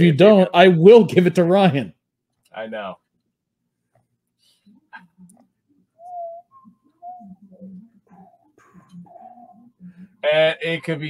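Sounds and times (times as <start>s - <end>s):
person whistling: 6.0s - 7.6s.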